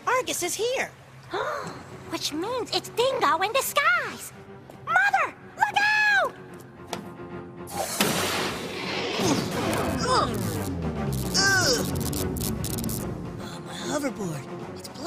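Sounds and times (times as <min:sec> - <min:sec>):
background music: 0:00.0 - 0:15.0
loud crash: 0:07.8 - 0:10.1.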